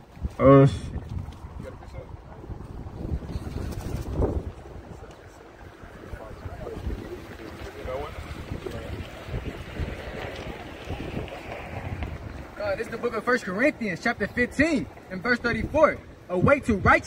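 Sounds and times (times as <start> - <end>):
wind buffeting microphone: 0.0 - 17.0
faint voices: 0.4 - 15.7.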